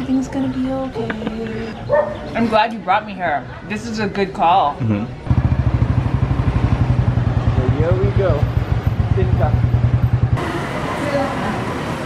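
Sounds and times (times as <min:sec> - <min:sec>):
street noise: 0:00.0 - 0:12.0
motorcycle engine running: 0:05.3 - 0:10.6.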